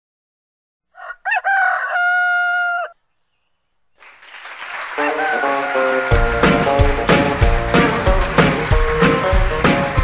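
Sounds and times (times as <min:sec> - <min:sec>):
rooster crowing: 0:00.9 - 0:03.0, 0:05.0 - 0:06.4.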